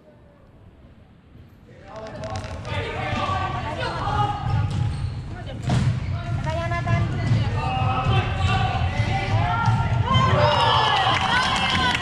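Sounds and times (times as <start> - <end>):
players and coaches shouting: 7.5 - 12.0.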